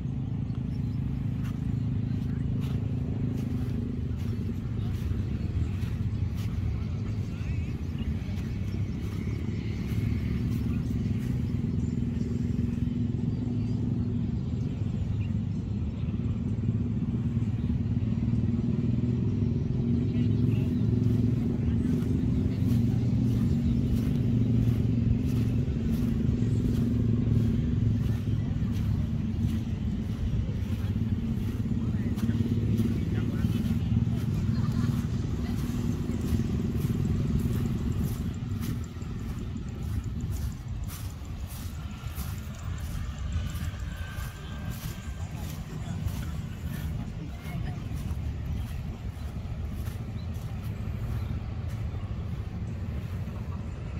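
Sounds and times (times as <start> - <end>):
small engine running: 0.0 - 53.9.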